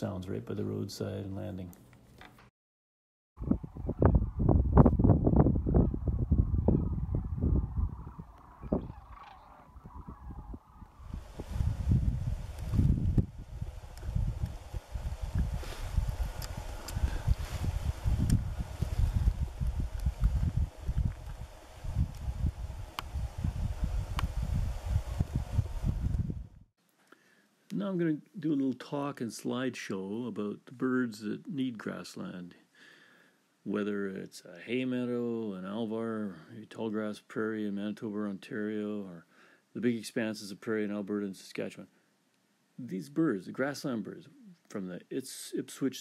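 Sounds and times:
wind rumble on microphone: 3.4s - 26.7s
cranes calling: 5.6s - 11.5s
outdoor hiss: 11.0s - 26.3s.

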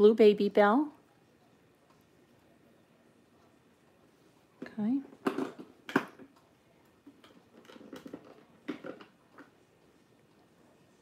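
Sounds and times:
plastic toys clicking and clattering: 5.2s - 6.4s, 7.0s - 9.6s.

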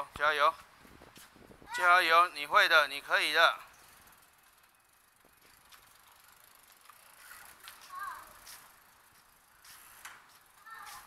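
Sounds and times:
bicycle freewheel ticking: 2.4s - 10.9s.

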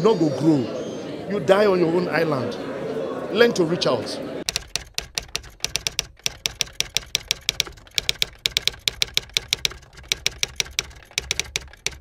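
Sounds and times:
typewriter key clicks: 4.5s - 12.0s.

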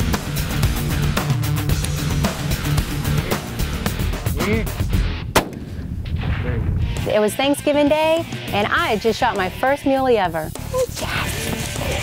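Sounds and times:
background music: 0.0s - 12.0s
rifle shot: 5.3s - 6.3s.

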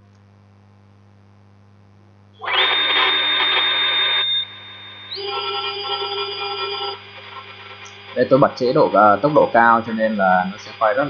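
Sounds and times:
electronic hum of held tones: 0.0s - 11.0s
synthetic milling spindle whir: 2.4s - 11.0s.

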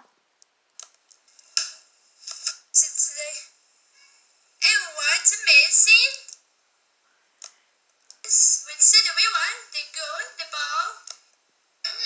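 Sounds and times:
voice through small speaker: 2.3s - 3.5s, 4.6s - 6.4s, 8.3s - 11.1s.

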